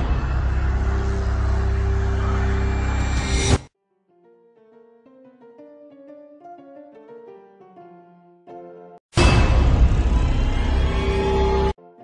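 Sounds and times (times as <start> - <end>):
low rumbling drone: 0.0 - 3.6.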